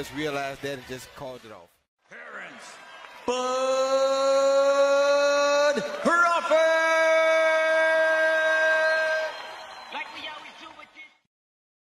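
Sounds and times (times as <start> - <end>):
announcer long drawn-out shout: 2.1 - 9.6.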